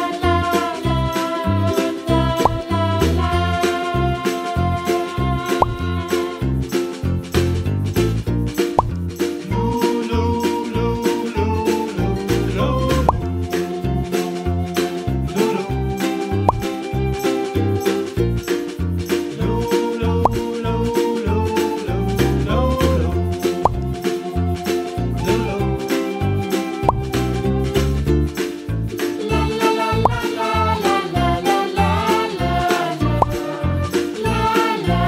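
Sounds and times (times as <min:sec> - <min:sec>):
bouncy children's music: 0:00.0 - 0:35.0
rising plop sound: 0:02.2 - 0:03.3, 0:05.5 - 0:06.0, 0:08.6 - 0:09.0, 0:12.9 - 0:13.4, 0:16.3 - 0:17.0, 0:20.2 - 0:20.5, 0:23.5 - 0:24.0, 0:26.6 - 0:27.9, 0:30.0 - 0:30.4, 0:33.0 - 0:33.4.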